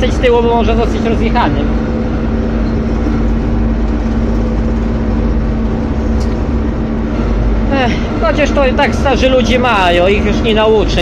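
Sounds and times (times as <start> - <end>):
combine harvester diesel engine running: 0.0 - 11.0.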